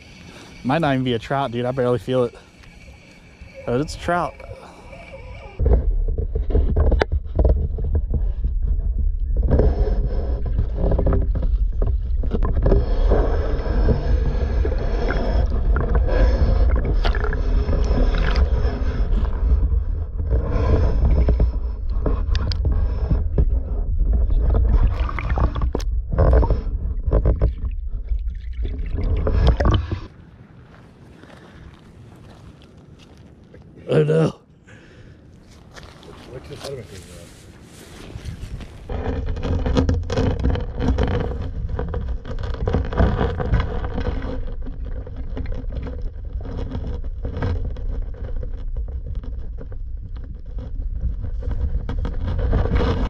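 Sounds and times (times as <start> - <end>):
muffled underwater rumble: 0.0 - 30.5, 35.8 - 53.0
quiet outdoor background: 0.0 - 53.0
water sloshing: 10.7 - 19.9, 24.5 - 33.8, 35.4 - 47.5.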